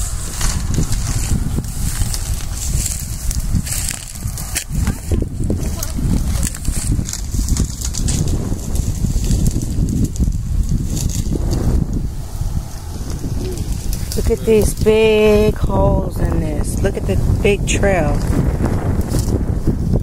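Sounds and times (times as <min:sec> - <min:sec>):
brushing and rustling: 0:00.0 - 0:16.9
wind buffeting microphone: 0:00.0 - 0:20.0.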